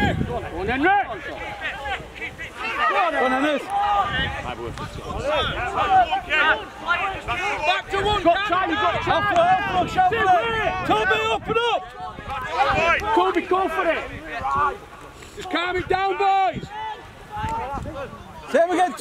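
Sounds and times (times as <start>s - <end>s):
shouts and calls of players: 0.0s - 19.0s.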